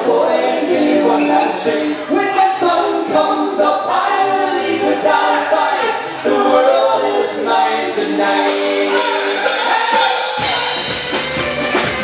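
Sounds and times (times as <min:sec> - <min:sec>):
singers in vocal harmony: 0:00.0 - 0:10.8.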